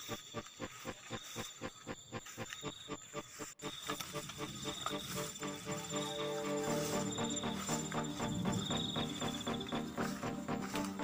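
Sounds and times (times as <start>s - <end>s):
high insect trill: 0.0s - 10.9s
sustained musical tones: 0.0s - 11.0s.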